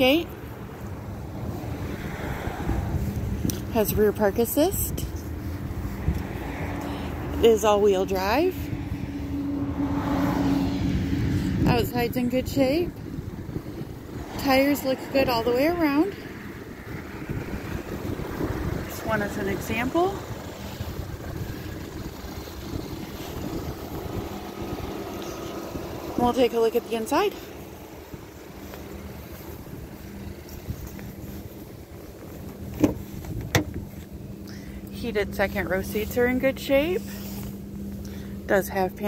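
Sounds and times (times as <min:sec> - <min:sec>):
wind buffeting microphone: 0:00.0 - 0:34.4
car door handle and latch clicks: 0:32.8 - 0:33.8.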